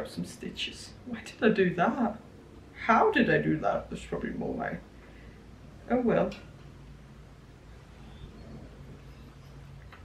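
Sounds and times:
faint steady low hum: 0.0 - 10.0.

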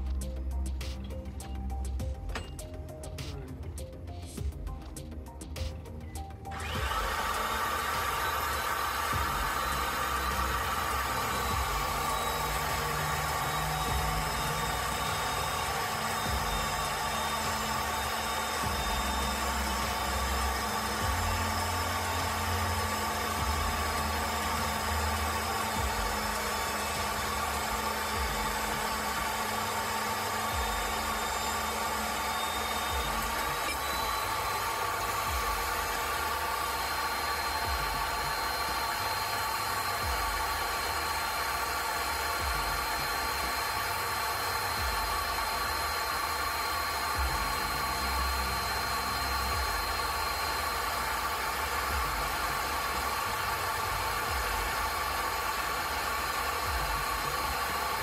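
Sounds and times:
pipe threading machine cutting: 0.0 - 58.0.

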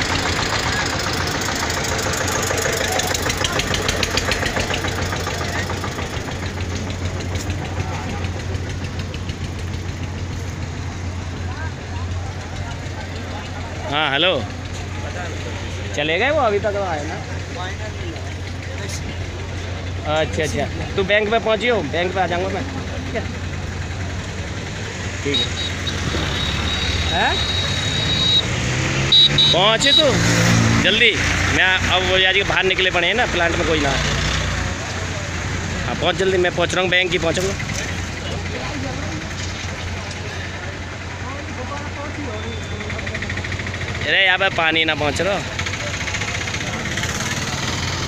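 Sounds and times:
faint crowd talking: 0.0 - 28.3, 31.6 - 48.0
engine idling hum: 0.0 - 28.4, 30.9 - 48.0.

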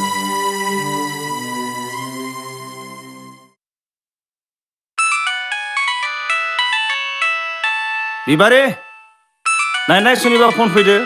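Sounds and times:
phone melodic ringtone: 5.0 - 11.0.

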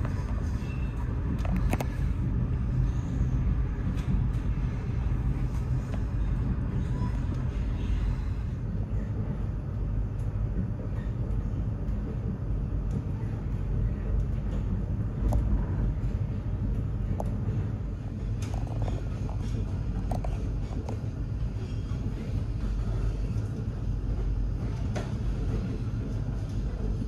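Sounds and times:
train rumbling inside carriage: 0.0 - 27.0.

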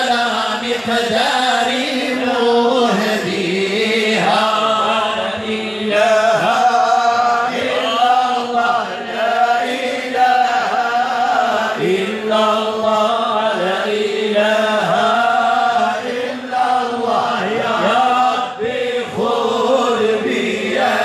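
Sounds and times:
men chanting in unison: 0.0 - 21.0.

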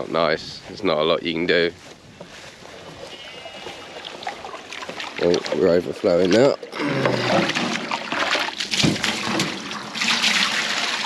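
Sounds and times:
water running into metal trough: 3.8 - 11.0.

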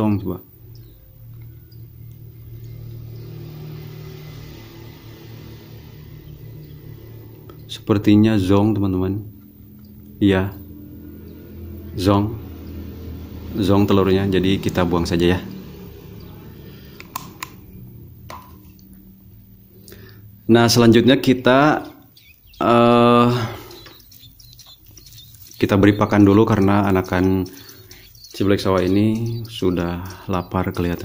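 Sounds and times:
low room noise: 0.0 - 31.0
vehicle engine rumbling: 0.0 - 31.0.

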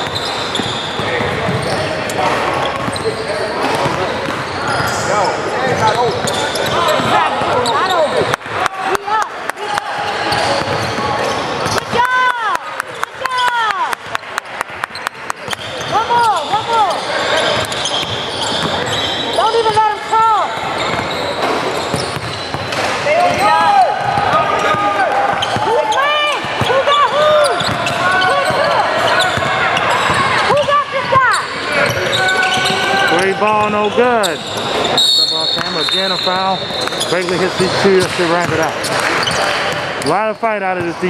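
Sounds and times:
basketball bouncing: 0.0 - 1.9, 2.7 - 5.0, 10.5 - 12.0, 17.6 - 19.0, 20.6 - 25.8, 27.6 - 28.7
players' voices: 0.4 - 41.0
shoes squeaking on hardwood: 15.5 - 19.9, 20.8 - 23.6.

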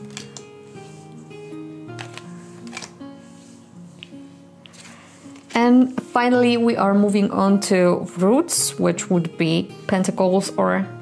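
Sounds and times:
cards clicking laid down: 0.0 - 0.5, 1.9 - 3.0
soft instrumental music: 0.0 - 11.0.

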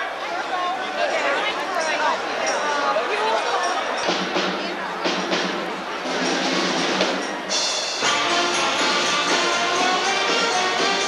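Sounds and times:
people talking: 0.0 - 7.8
drum and percussion strokes: 3.9 - 11.0
string band playing: 4.0 - 11.0.

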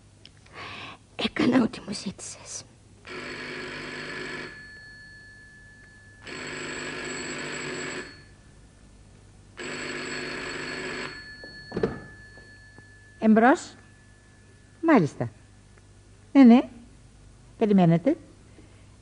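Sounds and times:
telephone bell ringing: 3.0 - 8.6, 9.6 - 14.8.

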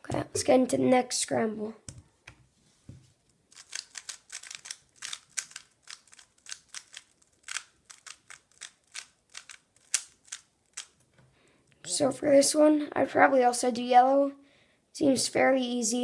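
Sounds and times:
plastic puzzle cube clicking: 3.5 - 11.0.

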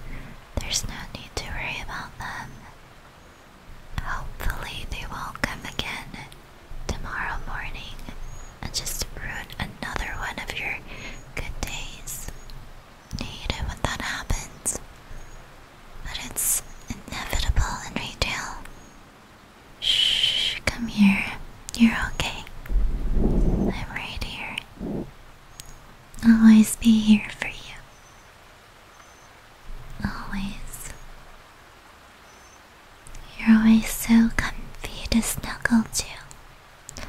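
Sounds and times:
woman whispering: 0.1 - 2.8, 4.0 - 12.4, 13.2 - 14.8, 16.0 - 18.7, 19.8 - 22.6, 23.4 - 25.1, 26.2 - 27.9, 30.0 - 31.0, 33.2 - 36.3.

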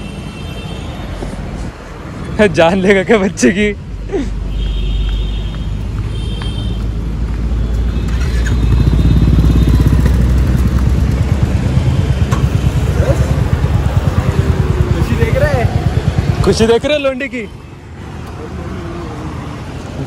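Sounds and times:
motorcycle engine revving: 7.9 - 17.0.

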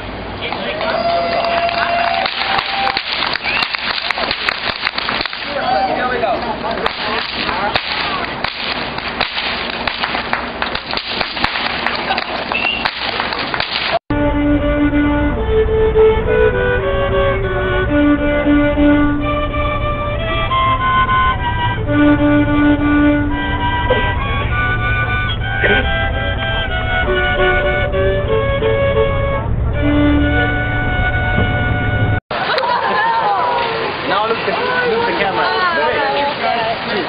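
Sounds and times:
street noise: 0.0 - 37.0
voices: 0.4 - 4.3, 5.3 - 8.6, 25.4 - 26.5, 32.4 - 37.0
whip cracking: 2.2 - 5.6, 6.8 - 14.0
solo violin melody: 14.1 - 32.2.

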